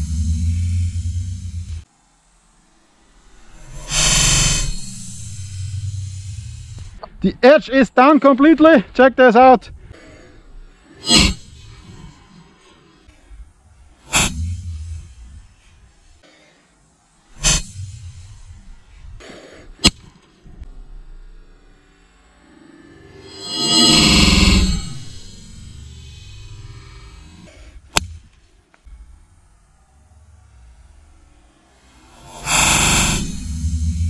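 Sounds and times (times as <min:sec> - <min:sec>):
loud rushing noise: 0:03.2 - 0:07.0, 0:22.6 - 0:25.8, 0:31.9 - 0:34.0.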